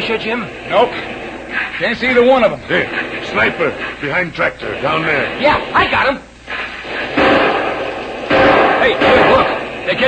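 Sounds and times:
loud blasts with rumble: 0.0s - 10.0s.

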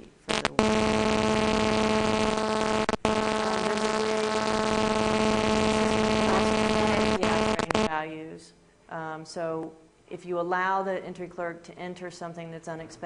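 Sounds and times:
loud buzzing hum with hiss: 0.0s - 8.0s.

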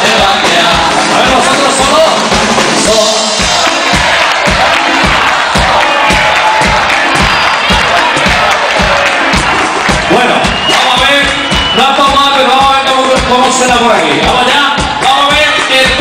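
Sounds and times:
crowd noise: 0.0s - 16.0s
live band music: 0.0s - 16.0s
kick drum beat: 3.4s - 16.0s.

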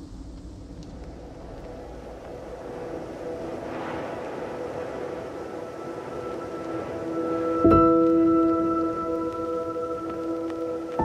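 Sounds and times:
low noisy rumbling drone: 0.0s - 11.0s.

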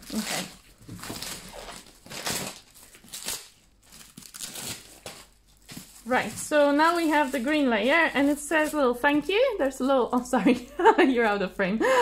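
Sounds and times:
paper wrapping rustling: 0.0s - 10.2s.

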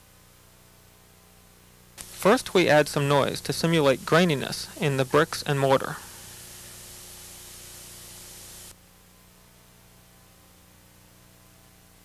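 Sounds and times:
faint low hum: 0.0s - 12.0s
tape hiss: 0.0s - 12.0s.

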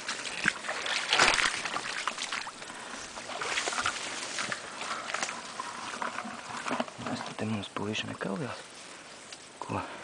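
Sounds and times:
shallow water splashing: 0.0s - 7.2s
reeds and grass rustling: 0.0s - 10.0s.

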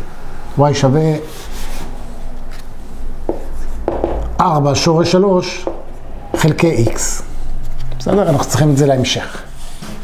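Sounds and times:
low steady hum: 0.0s - 8.7s
marker writing on whiteboard: 3.2s - 4.4s, 5.6s - 10.0s.

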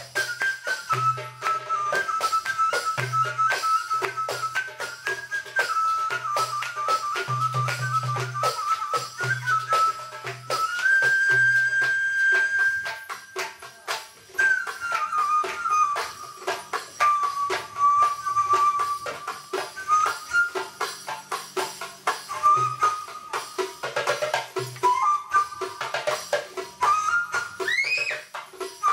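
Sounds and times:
hand percussion and tambourine: 0.0s - 28.9s
oud: 0.0s - 28.9s
qanun: 0.0s - 28.9s
sliding held melody: 0.0s - 28.9s.

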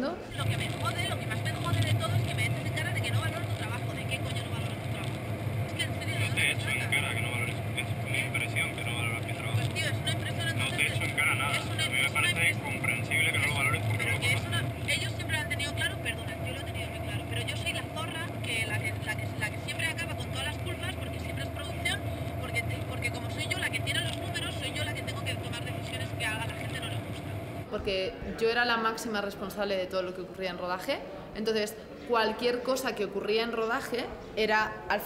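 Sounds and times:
constant hum: 0.0s - 28.0s
quiet talking: 0.0s - 28.6s
engine and road drone: 0.3s - 27.7s.

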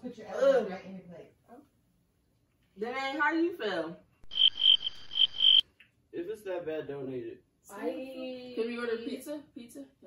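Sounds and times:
crickets chirping: 4.2s - 5.6s.

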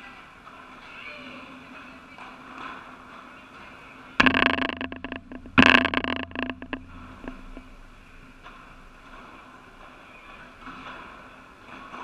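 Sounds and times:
loud knocks: 4.2s - 7.8s.

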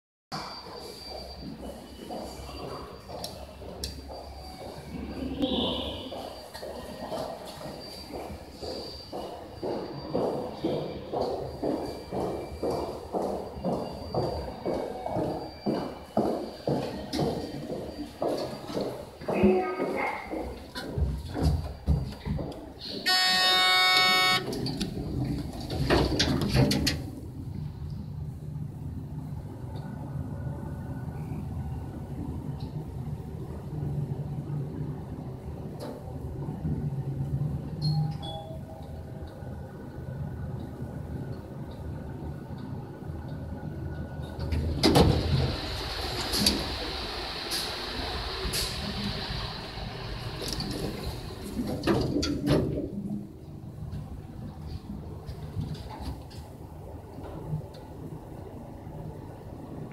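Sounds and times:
elevator doors sliding: 22.8s - 27.4s, 44.0s - 58.7s
steady electronic tone: 23.1s - 24.6s
hydraulic pump humming: 23.1s - 24.7s.

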